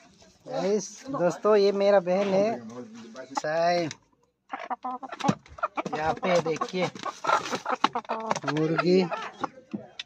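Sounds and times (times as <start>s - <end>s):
chickens calling: 0.4s - 10.0s.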